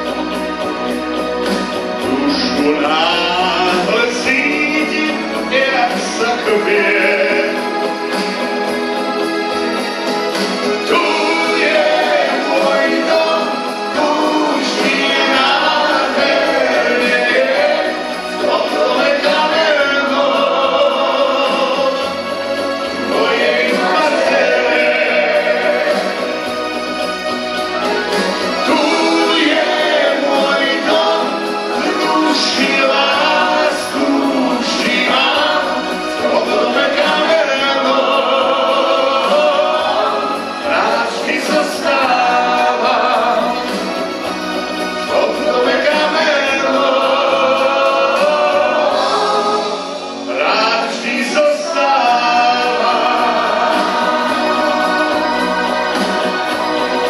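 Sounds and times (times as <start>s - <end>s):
pop song with singing: 0.0s - 57.0s.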